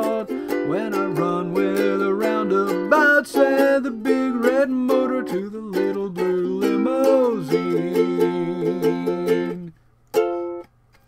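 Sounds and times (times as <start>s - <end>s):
person singing: 0.0s - 9.8s
ukulele strumming: 0.0s - 11.0s.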